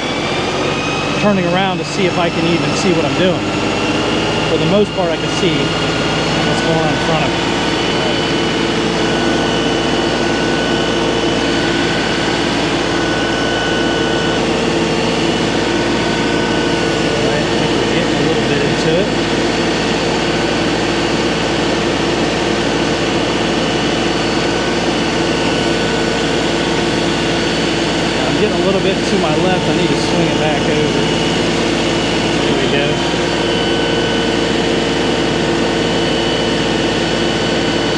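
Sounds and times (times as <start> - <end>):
tractor diesel engine running: 0.0 - 37.9.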